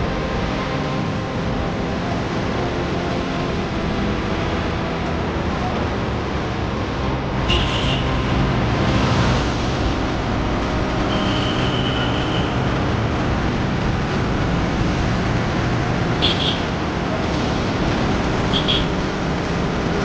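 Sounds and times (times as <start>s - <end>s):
steady mechanical rumble: 0.0s - 20.0s.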